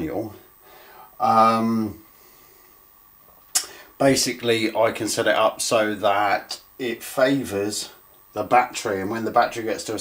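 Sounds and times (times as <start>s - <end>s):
sharp intake of breath: 0.6s - 1.2s, 3.6s - 4.0s.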